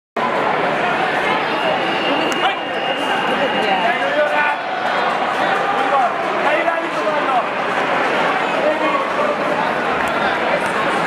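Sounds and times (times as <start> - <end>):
crowd talking and calling out: 0.2 - 11.0.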